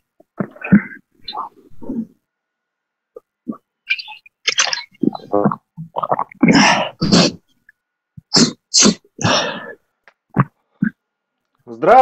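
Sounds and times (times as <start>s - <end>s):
man sneezing: 6.5s - 7.4s, 8.3s - 9.5s.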